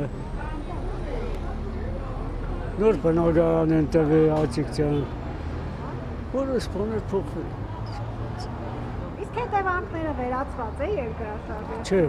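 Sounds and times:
faint voices: 0:00.0 - 0:12.0
vehicle engine rumble: 0:00.0 - 0:12.0.

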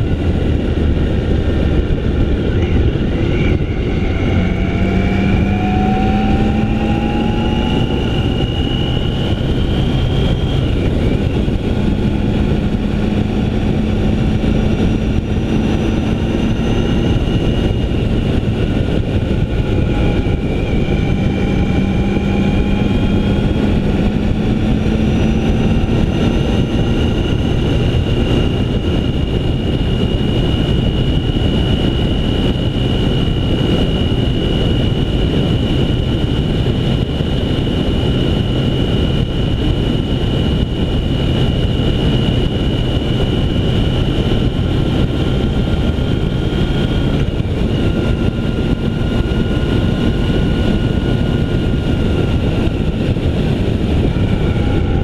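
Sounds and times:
motorcycle engine drone: 0:00.0 - 0:55.0
wind rush on microphone: 0:00.0 - 0:55.0.

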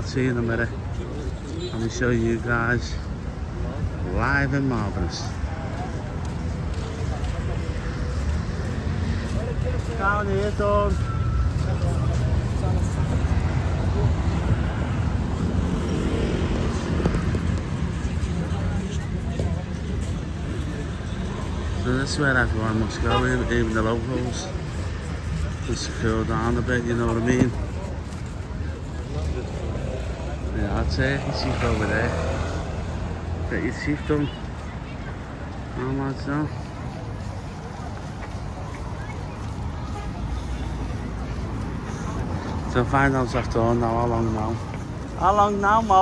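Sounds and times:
faint voices of passers-by: 0:00.0 - 0:46.0
low rumble of traffic: 0:00.0 - 0:46.0.

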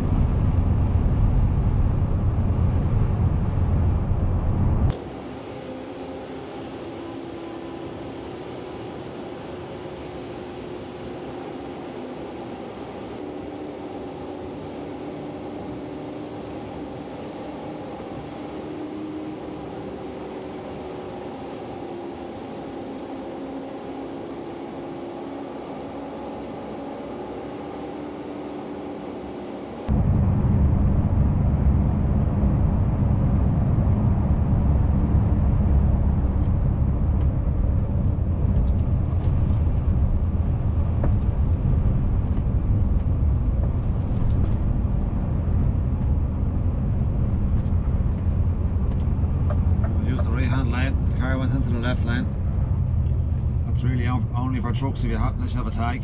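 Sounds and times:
loud low rumble: 0:00.0 - 0:05.0, 0:29.9 - 0:56.0
truck engine and road hum: 0:00.0 - 0:56.0.

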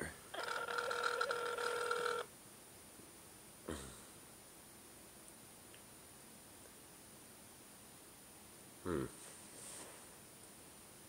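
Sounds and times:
telephone ringback tone: 0:00.4 - 0:02.3.

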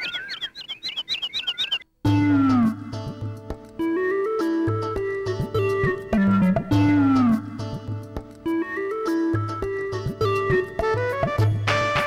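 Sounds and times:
birds chirping: 0:00.0 - 0:01.9.

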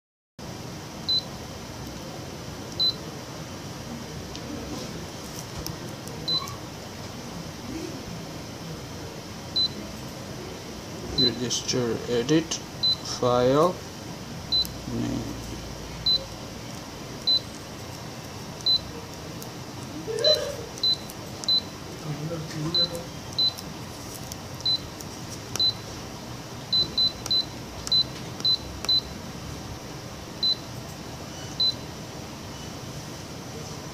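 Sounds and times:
steady low hum: 0:00.4 - 0:33.9
touch screen key beeps: 0:02.8 - 0:03.0, 0:06.3 - 0:06.6, 0:09.6 - 0:09.8, 0:12.8 - 0:13.1, 0:14.5 - 0:14.8, 0:16.0 - 0:16.4, 0:17.2 - 0:17.5, 0:18.6 - 0:18.9, 0:20.2 - 0:21.7, 0:22.7 - 0:23.6, 0:24.6 - 0:24.9, 0:25.5 - 0:25.8, 0:26.7 - 0:29.1, 0:30.4 - 0:30.6, 0:31.6 - 0:31.8.

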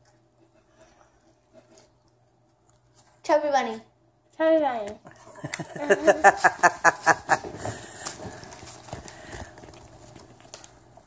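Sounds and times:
children's muffled laughter: 0:05.2 - 0:07.9.

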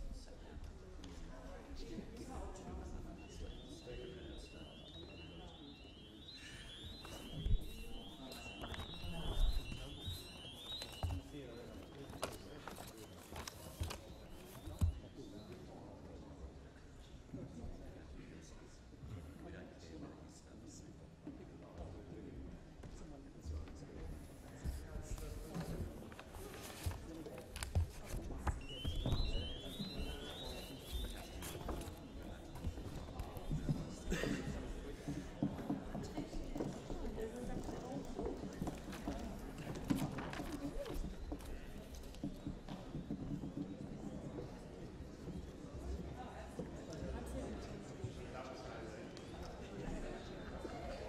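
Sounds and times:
murmur of voices: 0:00.0 - 0:51.0
electronic alarm bells: 0:04.4 - 0:11.3.

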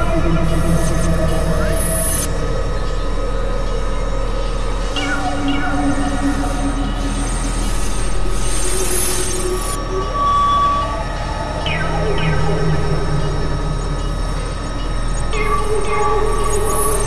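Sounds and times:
steady low hum: 0:00.0 - 0:17.0
synthesizer drones and held tones: 0:00.0 - 0:17.0.

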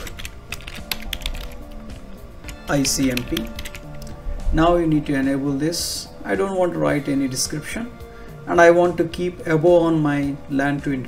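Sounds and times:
computer keyboard typing: 0:00.0 - 0:04.1
background music: 0:00.0 - 0:11.0.

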